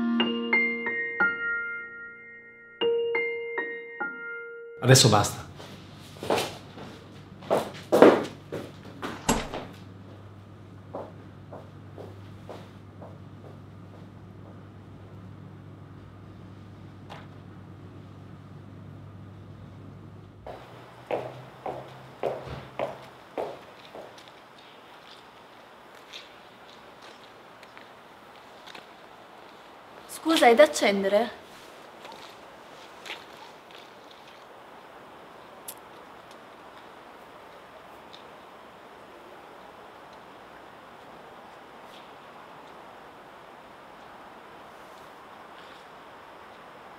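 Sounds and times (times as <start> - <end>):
steady low hum: 4.8 - 30.2.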